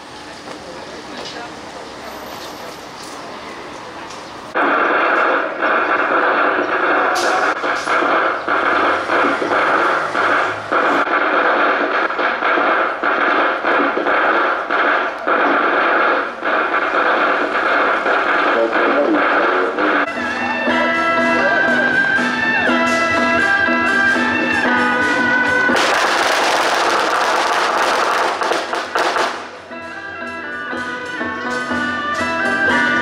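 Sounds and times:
harsh loudspeaker music and voice: 0:17.4 - 0:23.8
clear music: 0:20.1 - 0:25.8.

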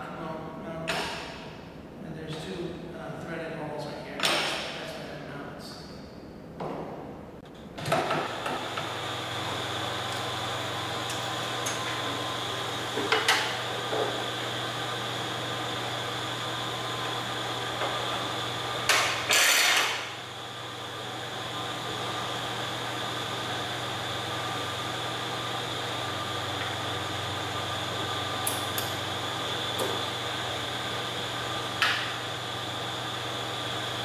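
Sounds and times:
room hum: 0:00.0 - 0:34.0.

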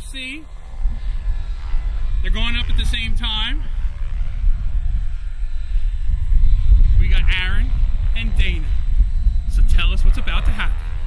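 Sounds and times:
heavy low rumble: 0:00.0 - 0:11.0
model helicopters whining: 0:00.0 - 0:11.0.

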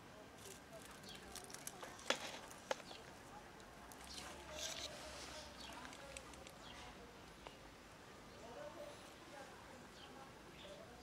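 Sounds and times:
cat crunching dry kibble: 0:00.4 - 0:03.0.

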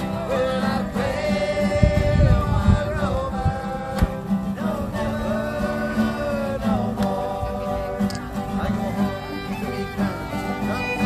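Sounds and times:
strummed acoustic guitar: 0:00.0 - 0:11.0
fiddles playing melody: 0:05.3 - 0:11.0.

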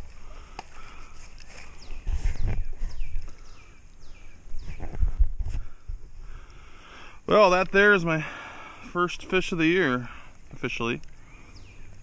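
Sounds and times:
bird calling: 0:00.0 - 0:07.1, 0:07.8 - 0:12.0.

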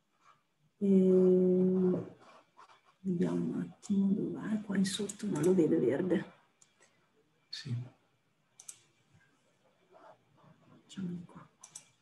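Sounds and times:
computer mouse clicks: 0:04.8 - 0:05.7, 0:08.6 - 0:08.9, 0:11.6 - 0:12.0.

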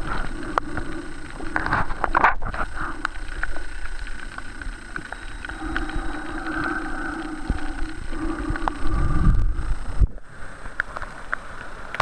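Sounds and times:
faint humming tones: 0:00.0 - 0:12.0
underwater rush of water: 0:00.0 - 0:12.0.

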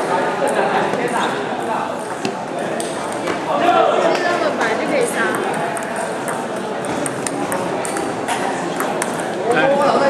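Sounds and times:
table tennis ball clicking: 0:05.2 - 0:09.4.

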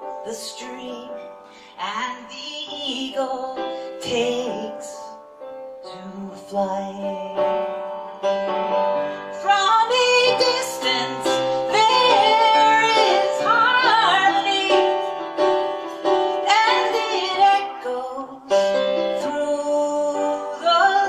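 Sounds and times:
piano chords: 0:00.0 - 0:21.0
woman singing a slow ballad: 0:09.4 - 0:15.1, 0:16.4 - 0:21.0.

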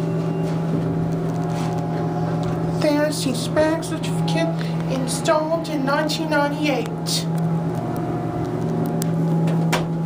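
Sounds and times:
elevator hum: 0:00.0 - 0:10.0.

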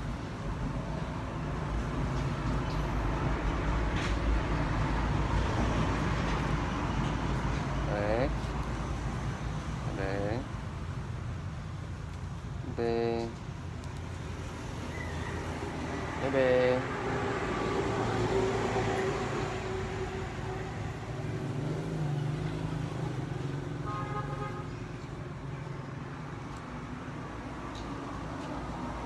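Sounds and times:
road traffic passing: 0:00.0 - 0:29.0
vehicle horn toots: 0:23.8 - 0:24.7.

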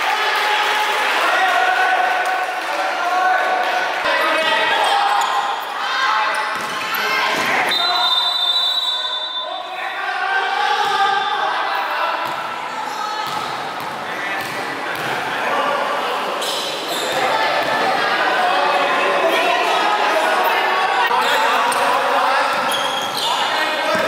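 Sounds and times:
players' voices echoing: 0:00.0 - 0:24.0
whistle blast: 0:07.7 - 0:09.6.

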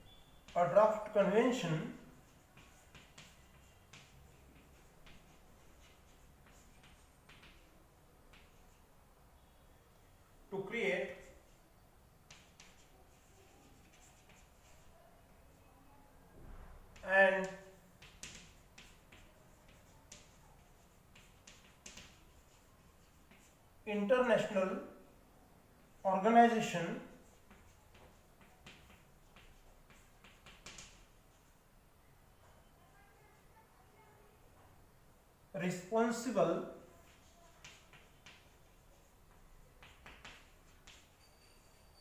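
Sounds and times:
chalk tapping and scraping: 0:00.1 - 0:09.1, 0:10.6 - 0:15.1, 0:16.9 - 0:25.0, 0:25.8 - 0:31.7, 0:36.2 - 0:42.0.

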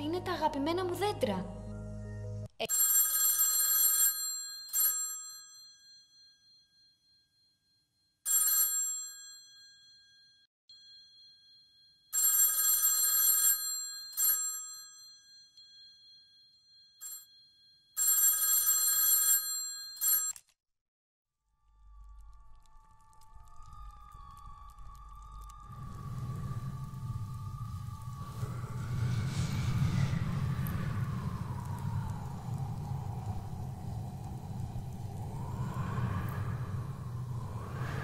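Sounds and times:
telephone bell ringing: 0:02.6 - 0:07.6, 0:08.2 - 0:20.4.

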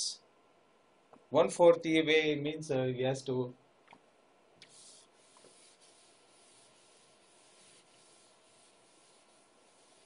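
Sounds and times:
light rubbing: 0:04.6 - 0:10.0.

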